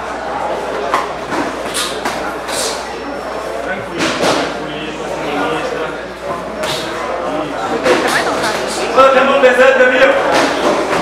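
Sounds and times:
voices calling out in hall: 0.0s - 11.0s.

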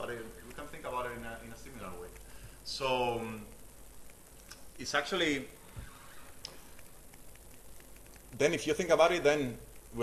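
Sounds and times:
faint ticks: 0.4s - 2.8s, 3.4s - 4.8s, 5.7s - 10.0s.

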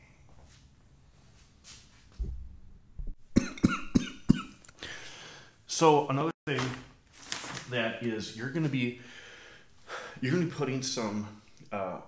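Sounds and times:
man coughing: 3.4s - 4.6s.

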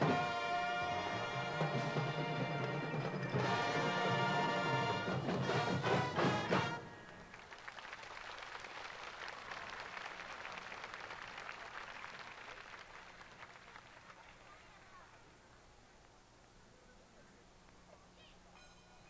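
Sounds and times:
loud percussion hits: 0.0s - 6.8s
marching band playing: 0.0s - 7.3s
crowd applause: 0.0s - 15.2s.

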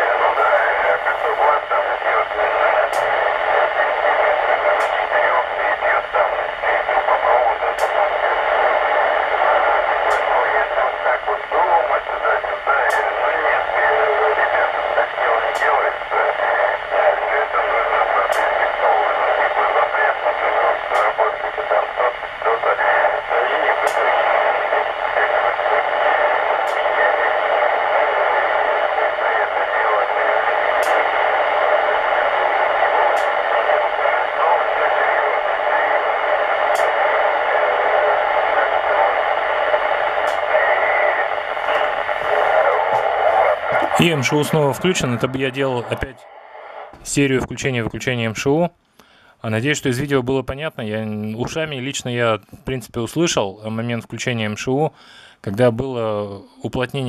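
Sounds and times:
voice over radio: 0.0s - 48.8s, 49.4s - 57.0s
radio hiss: 0.0s - 57.0s.

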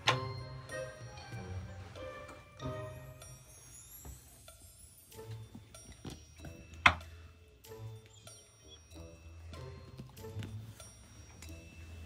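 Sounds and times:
light ticking background music: 0.0s - 12.0s.

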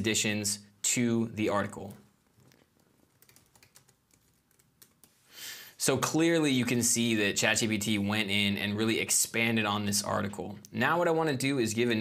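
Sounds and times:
fast typing on keyboard: 2.4s - 5.1s.

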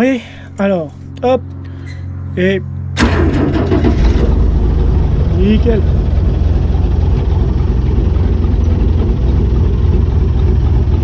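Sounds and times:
tractor engine running: 2.7s - 11.0s.

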